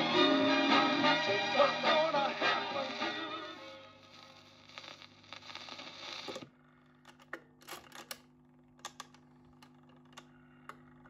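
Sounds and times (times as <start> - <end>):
faint record music: 0.0 - 6.6
record player hum: 0.0 - 11.0.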